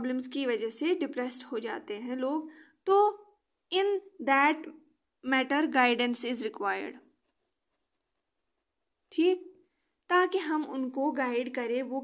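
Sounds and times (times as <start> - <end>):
pen scratching on paper: 7.1 - 9.1.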